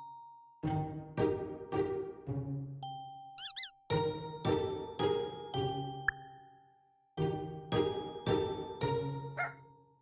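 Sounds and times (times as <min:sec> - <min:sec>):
chiming background music: 0:00.0 - 0:01.4, 0:02.3 - 0:10.0
high gliding squeaks: 0:03.4 - 0:03.8.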